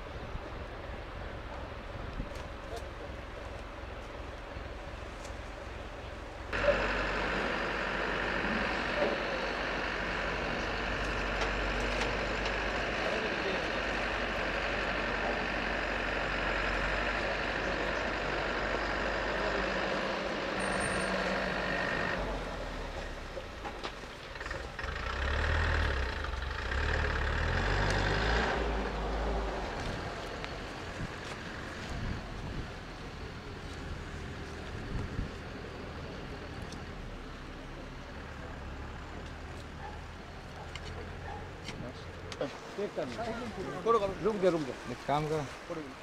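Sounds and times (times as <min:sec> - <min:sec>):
voices: 0:00.0 - 0:24.9, 0:26.0 - 0:46.0
diesel engine running: 0:00.0 - 0:46.0.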